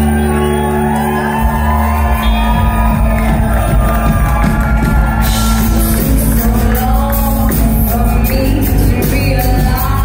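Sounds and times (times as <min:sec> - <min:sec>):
deep bass notes: 0:00.0 - 0:10.0
electric guitar: 0:00.0 - 0:10.0.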